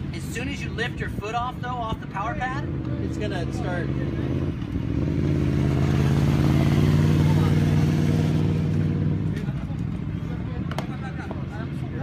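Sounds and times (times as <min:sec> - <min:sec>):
vehicle engine passing by: 0:02.5 - 0:10.4.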